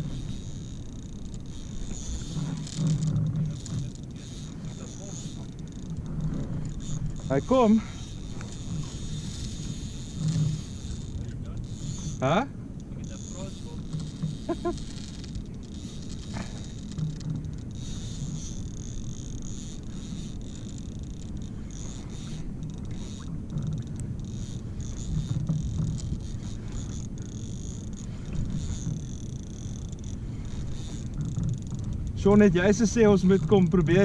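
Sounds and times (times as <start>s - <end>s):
fishing reel buzzing: 0.0s - 34.0s
low steady rumble: 0.0s - 34.0s.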